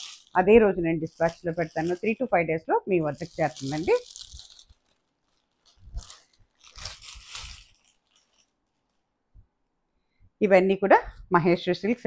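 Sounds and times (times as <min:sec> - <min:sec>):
plastic packaging crinkling: 0:00.0 - 0:09.2.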